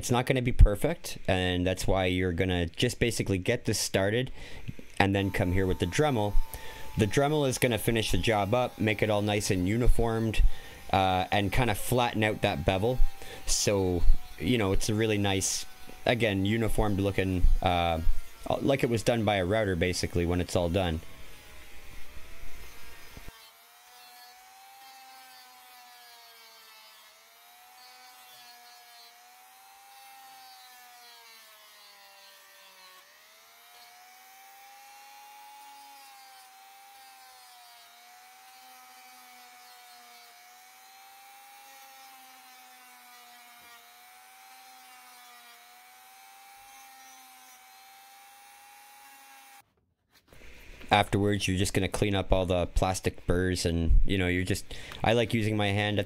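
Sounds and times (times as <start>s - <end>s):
rotary tool sanding plastic: 4.4s - 56.0s.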